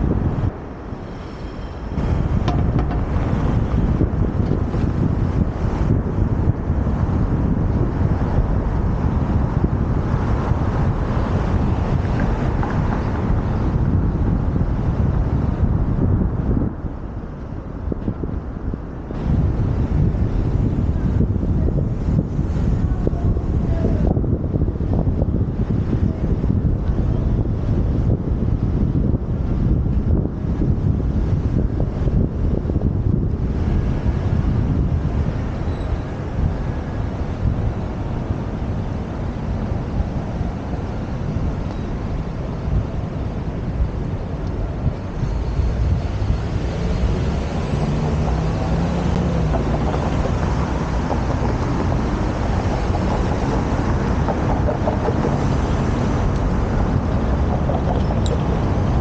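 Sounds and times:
street traffic: 0.0 - 59.0
wind on microphone: 0.0 - 59.0.

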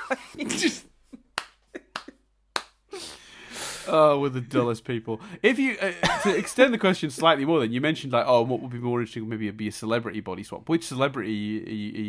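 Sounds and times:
man speaking: 3.8 - 12.0.

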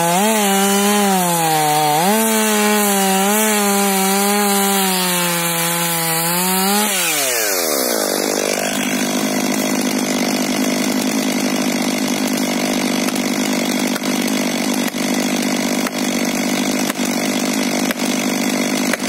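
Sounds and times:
chainsaw idling: 0.0 - 19.0.

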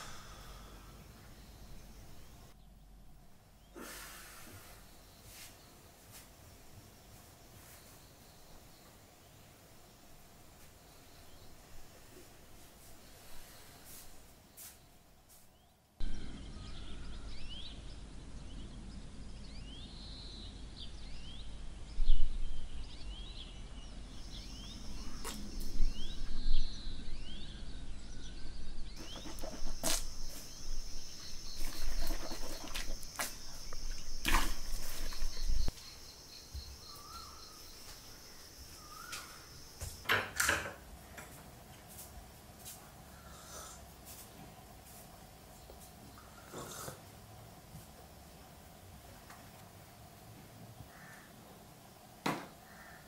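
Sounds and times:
birds chirping: 0.0 - 40.1
high insect drone: 29.0 - 48.8.

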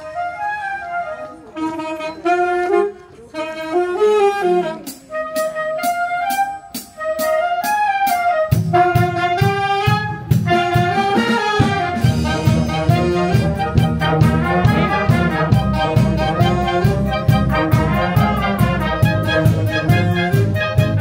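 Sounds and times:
wind band playing melody: 0.0 - 21.0.

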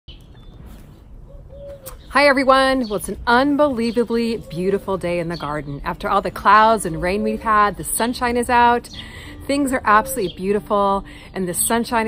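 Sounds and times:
high bird chirp: 0.1 - 5.9.

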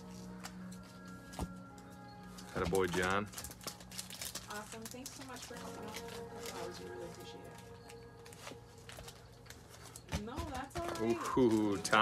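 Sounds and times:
foil wrappers clicking: 0.0 - 12.0
quiet background music: 0.0 - 12.0.

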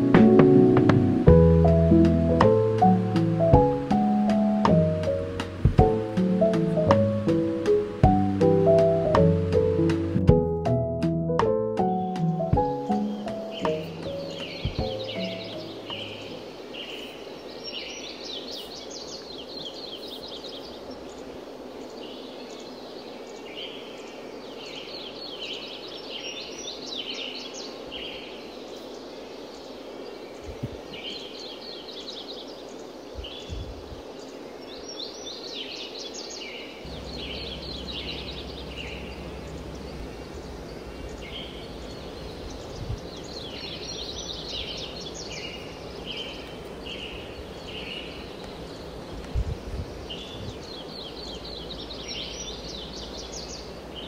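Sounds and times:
outdoor background hiss: 0.0 - 54.0
songbird singing: 0.0 - 54.0
faint low rumble: 36.9 - 54.0.

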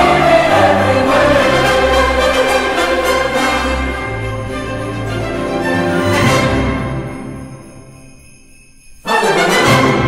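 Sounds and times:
choir singing: 0.0 - 7.0, 9.0 - 10.0
orchestral accompaniment: 0.0 - 8.4, 9.0 - 10.0.

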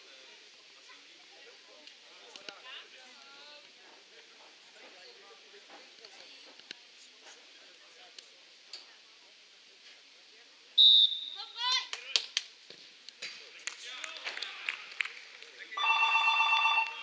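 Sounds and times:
referee's whistle blast: 10.8 - 11.5.

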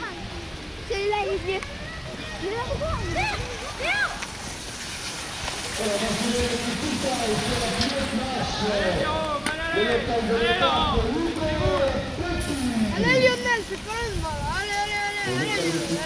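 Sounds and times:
people talking and calling out: 0.0 - 16.0
wind rumble on microphone: 0.2 - 9.0, 10.0 - 16.0.

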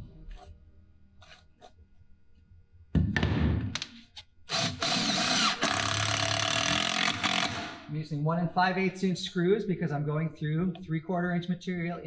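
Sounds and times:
cordless driver driving screw: 4.5 - 7.7.

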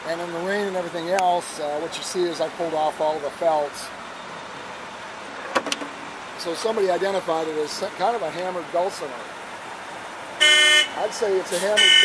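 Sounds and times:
faint street noise: 0.0 - 12.0
car horn honk: 10.4 - 11.0, 11.6 - 12.0.

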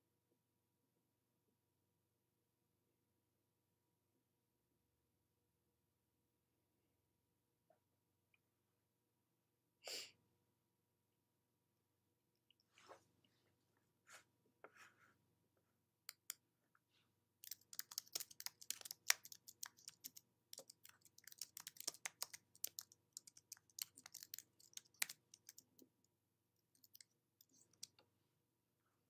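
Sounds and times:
small clicks and crackles: 17.4 - 28.1.

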